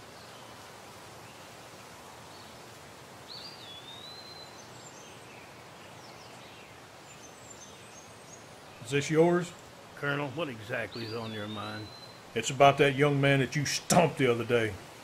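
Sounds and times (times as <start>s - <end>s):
faint background noise: 0.0s - 15.0s
gliding whistled bird call: 10.6s - 12.2s.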